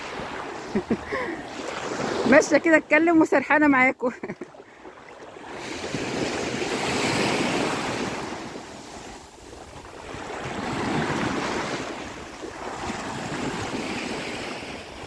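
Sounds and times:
waves breaking on sandy shore: 0.0s - 15.0s.

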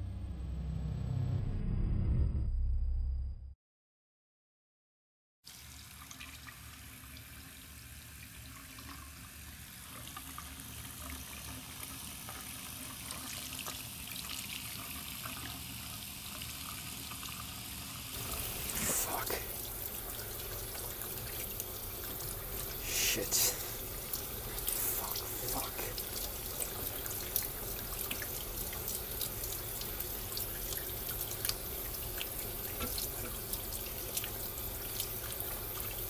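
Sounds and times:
water running from tap: 5.5s - 36.0s.

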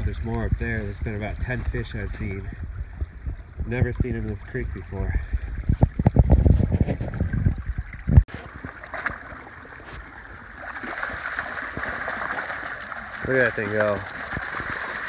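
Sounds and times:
low rumbling and thumping: 0.0s - 8.4s
creek water rushing: 8.3s - 15.0s.

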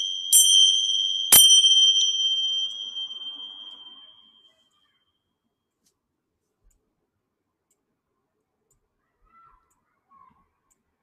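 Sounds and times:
tingsha cymbals ringing: 0.0s - 4.5s.

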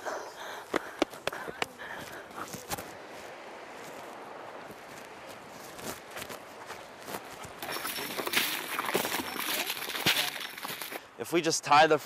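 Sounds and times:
footsteps on rocks: 0.7s - 11.1s.

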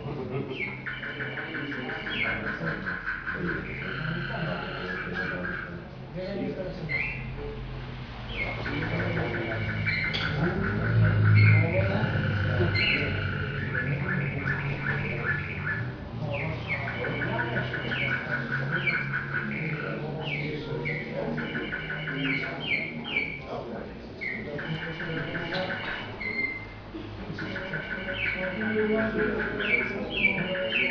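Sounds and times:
murmur of voices: 0.0s - 30.9s
canary singing trills: 0.4s - 5.8s, 6.7s - 7.6s, 8.2s - 23.6s, 24.2s - 26.8s, 27.4s - 30.9s.

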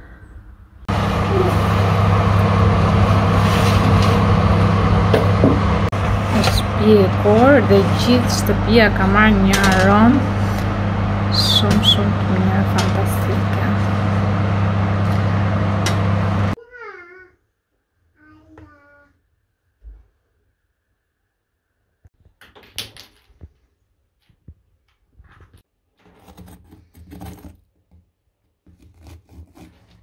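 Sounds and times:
oven fan humming: 0.9s - 16.6s
knife scraping bread crust: 26.1s - 27.7s, 28.7s - 30.0s.

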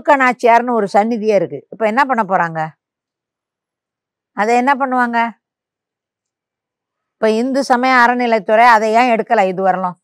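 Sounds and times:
woman speaking: 0.0s - 2.8s, 4.4s - 5.4s, 7.2s - 10.0s.

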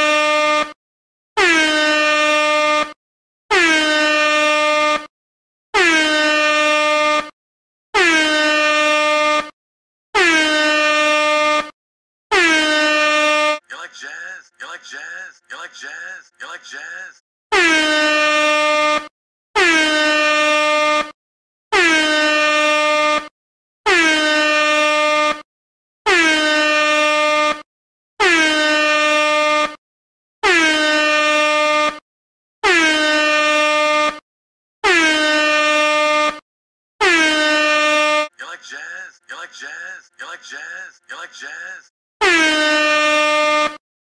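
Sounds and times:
air horn blasts: 0.0s - 0.8s, 1.4s - 5.1s, 5.7s - 7.4s, 8.0s - 9.6s, 10.2s - 13.6s, 17.5s - 23.3s, 23.9s - 25.4s, 26.1s - 27.6s, 28.2s - 29.8s, 30.4s - 32.0s, 32.6s - 34.2s, 34.8s - 36.4s, 37.0s - 38.3s, 42.2s - 43.8s.

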